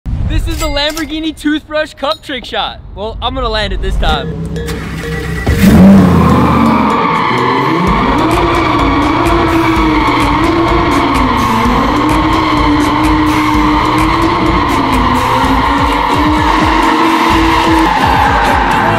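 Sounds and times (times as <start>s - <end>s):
tyres skidding and squealing: 4.0s - 18.9s
car engine revving: 4.3s - 18.9s.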